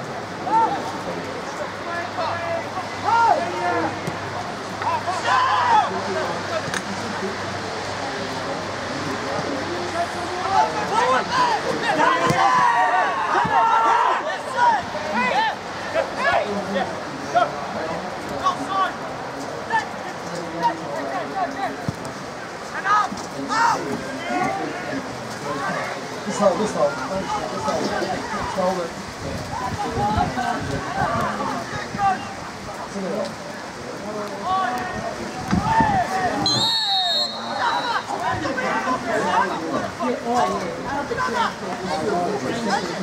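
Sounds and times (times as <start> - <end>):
distant shouts and calls: 4.8 - 6.6, 10.0 - 16.5, 34.5 - 40.0.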